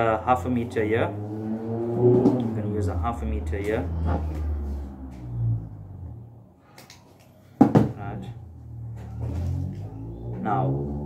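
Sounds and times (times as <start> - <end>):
steady low hum: 0.0 - 6.7
man speaking: 2.4 - 4.0.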